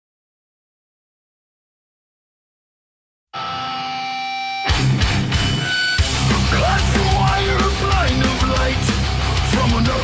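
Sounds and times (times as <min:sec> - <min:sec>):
ringing guitar chord: 0:03.4 - 0:06.3
heavy metal band playing: 0:03.4 - 0:10.0.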